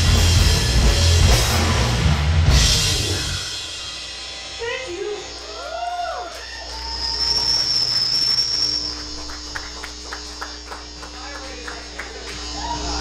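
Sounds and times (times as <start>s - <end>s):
amplifier feedback whistling: 6.0s - 9.9s.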